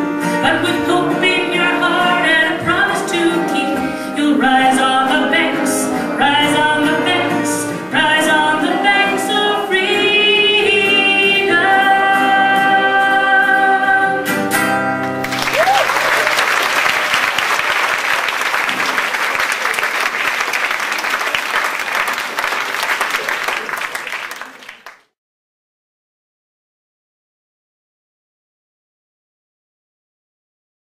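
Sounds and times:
strummed acoustic guitar: 0.0s - 15.2s
woman singing folk song: 0.1s - 14.6s
audience applauding: 15.1s - 25.2s.

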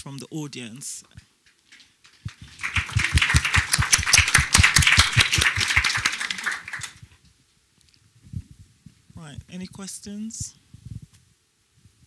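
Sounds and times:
audience applauding: 1.7s - 7.0s.

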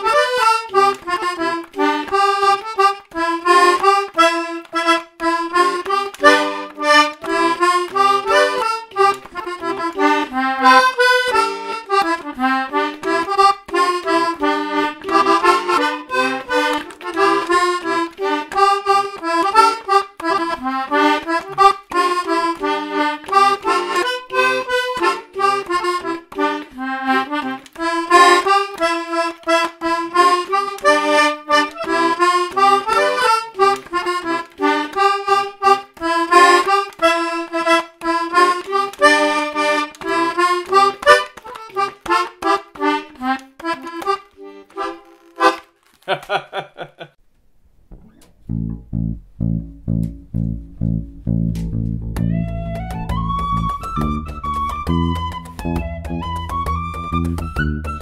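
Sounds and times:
button accordion playing a waltz: 0.0s - 45.8s, 52.2s - 58.0s.

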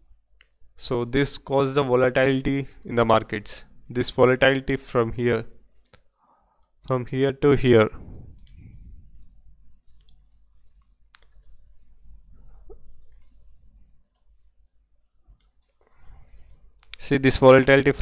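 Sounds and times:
computer mouse clicking: 5.8s - 6.8s, 8.3s - 8.7s, 9.9s - 11.9s, 13.0s - 14.6s, 15.2s - 17.0s.

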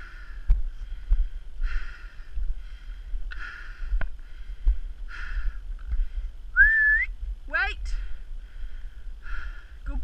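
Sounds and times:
breathy rushes: 0.0s - 6.4s
low rumble on microphone: 0.0s - 10.0s.

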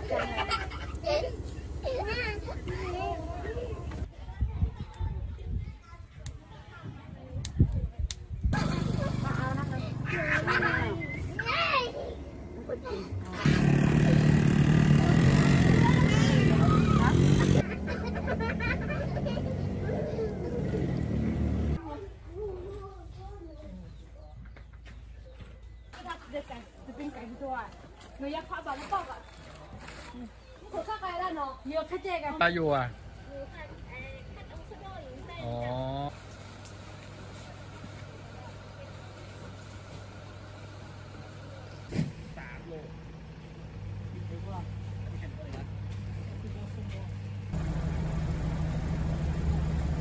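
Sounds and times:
people talking: 2.0s - 17.7s
low engine-like hum: 8.5s - 24.4s, 32.9s - 50.0s.

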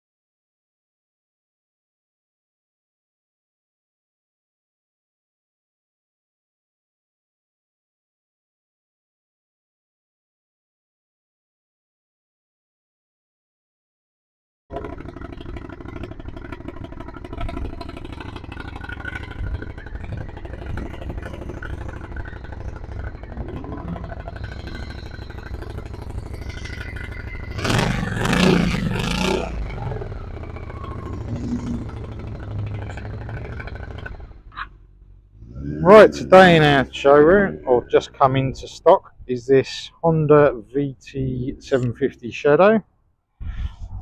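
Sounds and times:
motorcycle engine idling: 14.7s - 42.5s.

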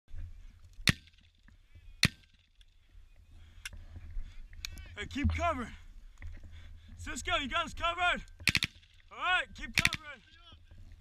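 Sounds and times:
loud sharp cracks: 0.8s - 1.2s, 8.4s - 9.0s.

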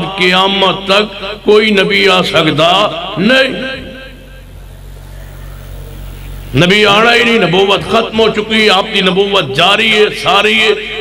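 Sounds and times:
faint background noise: 0.0s - 11.0s
steady low hum: 0.0s - 11.0s.

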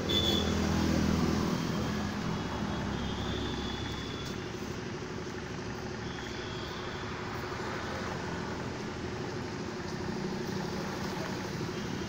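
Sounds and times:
vehicle engine and traffic noise: 0.0s - 12.0s.

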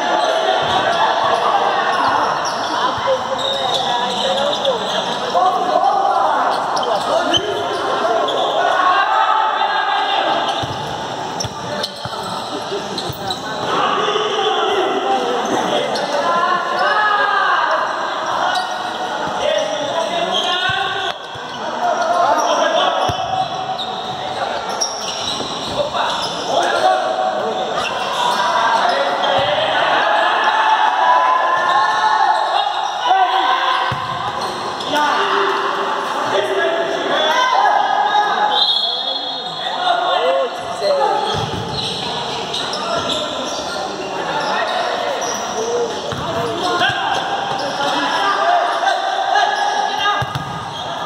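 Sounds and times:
ball kicked and bouncing on court: 33.9s - 34.4s, 41.3s - 41.8s, 46.1s - 46.4s, 50.2s - 50.7s.

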